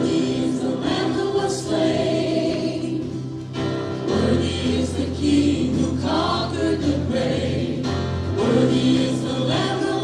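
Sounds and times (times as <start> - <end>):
group singing worship song: 0.0 - 10.0.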